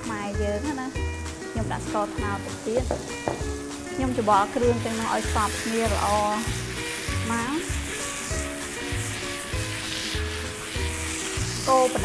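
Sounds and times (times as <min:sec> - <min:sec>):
background music with beat: 0:00.0 - 0:04.7
meat sizzling in a pan: 0:00.0 - 0:12.0
wooden spatula stirring: 0:02.8 - 0:12.0.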